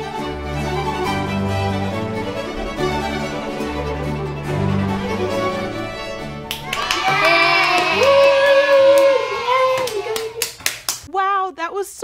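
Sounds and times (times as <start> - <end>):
baroque string orchestra: 0.0 - 6.8
children cheering: 1.8 - 10.6
people clapping: 6.4 - 11.1.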